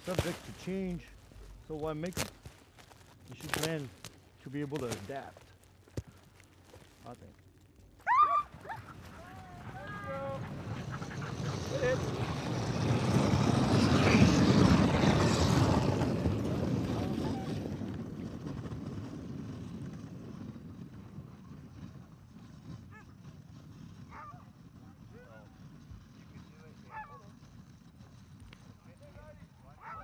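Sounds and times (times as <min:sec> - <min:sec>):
sled runners and paws on snow: 0:00.0 - 0:30.0
sled dogs yelping and whining: 0:08.0 - 0:18.0, 0:22.7 - 0:25.6, 0:26.7 - 0:27.4, 0:29.8 - 0:30.0.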